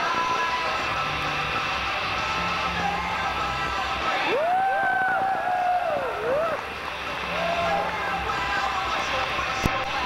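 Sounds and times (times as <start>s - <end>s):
music bass beat: 0.0s - 10.0s
voices singing long held notes: 0.0s - 10.0s.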